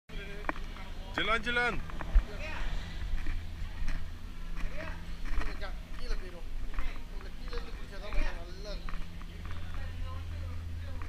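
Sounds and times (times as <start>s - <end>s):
distant people talking: 0.1s - 11.0s.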